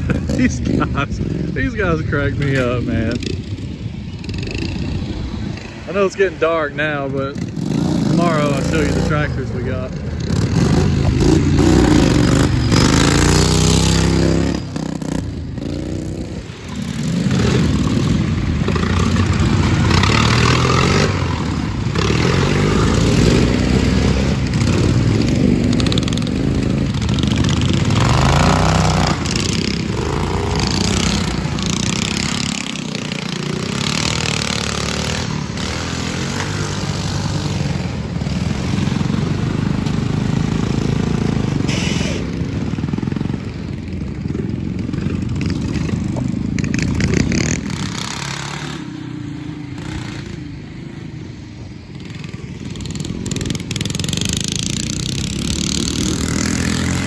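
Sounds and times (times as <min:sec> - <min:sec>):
small engines revving: 0:07.1 - 0:43.4, 0:44.9 - 0:49.0, 0:52.0 - 0:57.0.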